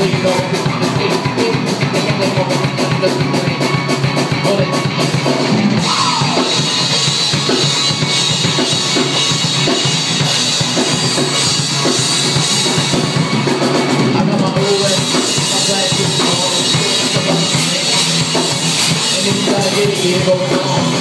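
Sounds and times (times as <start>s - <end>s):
drum kit kick and snare: 0.0s - 21.0s
electric guitars: 0.0s - 21.0s
rock band playing: 0.0s - 21.0s.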